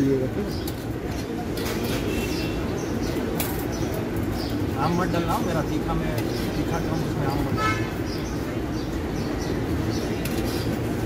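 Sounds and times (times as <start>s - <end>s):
low street hum: 0.0s - 11.0s.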